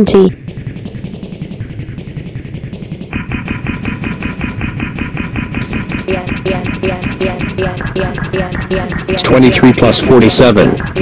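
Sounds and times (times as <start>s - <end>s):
stutter loop effect: 0.0s - 11.0s.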